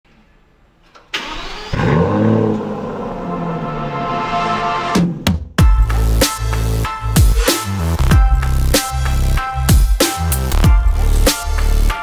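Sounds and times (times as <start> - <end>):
car engine starting and idling: 0.9 - 5.3.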